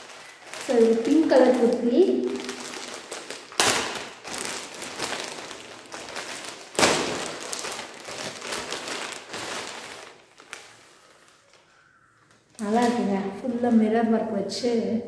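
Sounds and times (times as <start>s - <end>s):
loud plastic crackles: 0.0s - 13.8s
plastic bag crinkling and rustling: 0.0s - 14.0s.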